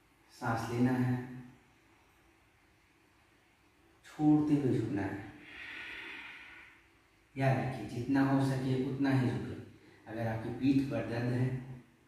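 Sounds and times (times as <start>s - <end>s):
man exhaling: 5.4s - 6.8s.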